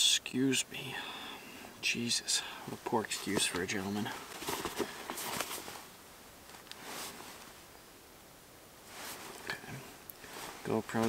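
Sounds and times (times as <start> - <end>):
jacket rustling by hand: 2.7 - 7.7, 8.8 - 11.0.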